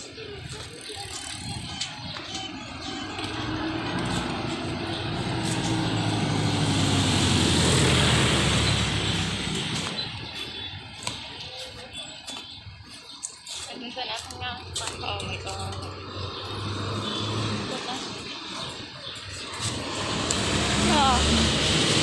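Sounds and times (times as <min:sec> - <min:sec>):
motorcycle engine passing by: 0:02.8 - 0:10.2, 0:15.9 - 0:18.2, 0:19.5 - 0:22.0.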